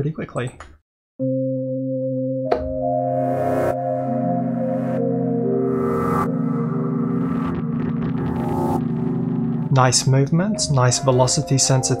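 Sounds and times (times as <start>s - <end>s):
synthesizer chords: 1.2s - 12.0s.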